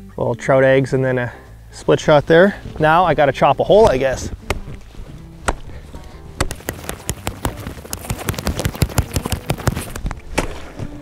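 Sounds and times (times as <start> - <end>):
background music: 0.0 - 11.0
axe chopping ice: 6.4 - 10.7.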